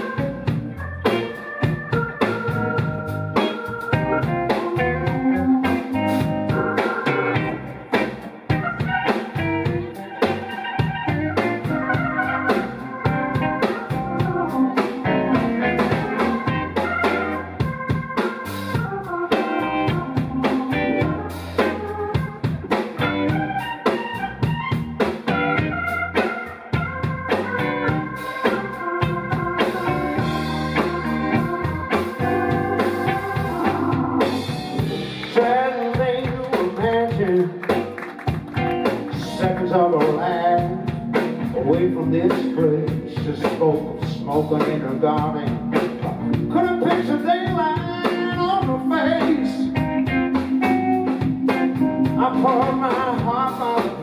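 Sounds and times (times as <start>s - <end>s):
bass guitar: 0.0s - 54.0s
drum kit: 0.0s - 54.0s
electric guitar: 0.0s - 54.0s
organ: 0.0s - 54.0s.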